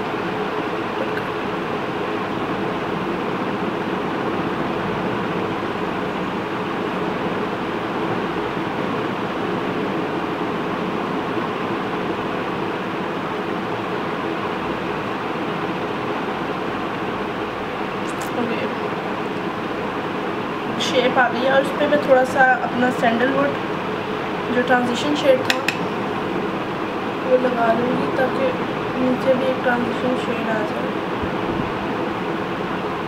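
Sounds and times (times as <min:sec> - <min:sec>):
appliance hum and hiss: 0:00.0 - 0:33.0.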